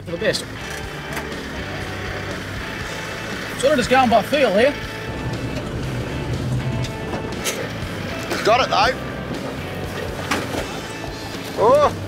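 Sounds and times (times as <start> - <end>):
background music: 0.0 - 12.0
diesel engine working at low speed: 0.0 - 12.0.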